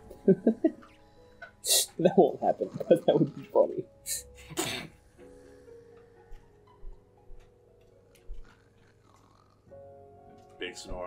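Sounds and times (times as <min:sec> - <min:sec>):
quiet ticks: 0:05.9 - 0:09.5.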